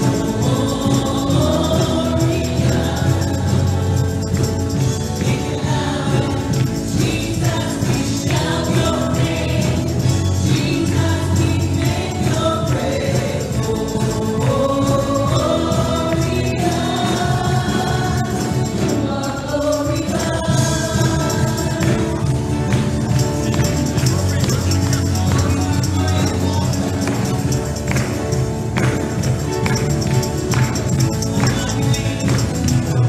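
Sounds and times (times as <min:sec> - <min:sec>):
women singing together: 0:00.0 - 0:04.2, 0:05.2 - 0:22.4
band with electric guitar: 0:00.0 - 0:33.0.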